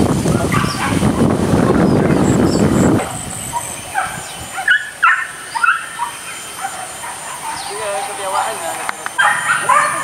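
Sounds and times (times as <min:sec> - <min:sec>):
dogs barking: 0:00.4 - 0:01.4, 0:03.5 - 0:10.0.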